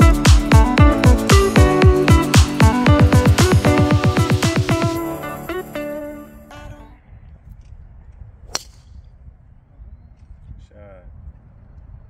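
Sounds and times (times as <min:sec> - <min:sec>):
background music: 0:00.0 - 0:06.9
low wind rumble: 0:06.5 - 0:12.0
golf driver striking ball: 0:08.5 - 0:08.9.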